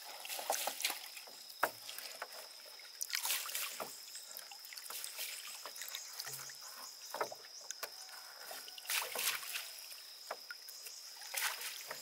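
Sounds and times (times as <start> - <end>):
water dripping and splashing: 0.0 - 12.0.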